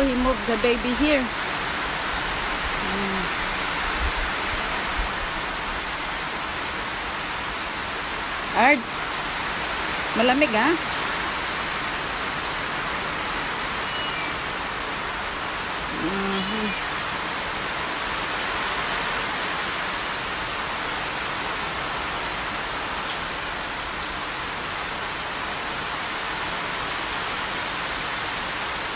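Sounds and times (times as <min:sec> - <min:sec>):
heavy rain on leaves: 0:00.0 - 0:28.9.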